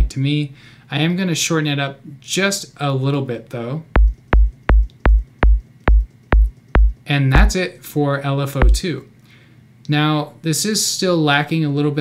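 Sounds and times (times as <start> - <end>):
synthesized kick drum hits: 4.0 - 7.5, 8.6 - 8.8.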